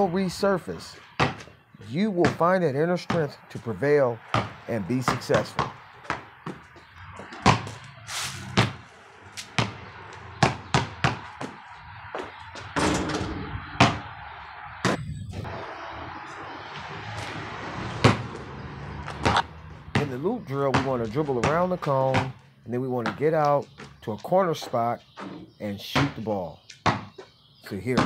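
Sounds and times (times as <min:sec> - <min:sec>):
basketball bouncing on concrete: 0:01.2 - 0:12.9, 0:13.8 - 0:14.1, 0:14.8 - 0:15.1, 0:17.9 - 0:24.2, 0:25.9 - 0:28.0.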